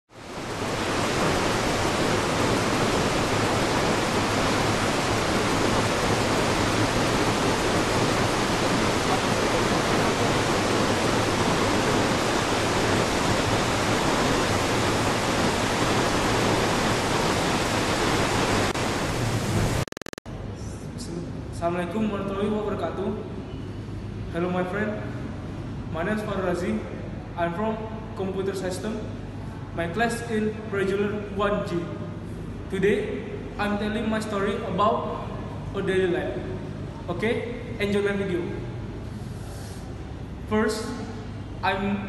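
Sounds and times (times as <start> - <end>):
waterfall rushing: 0.2 - 19.9.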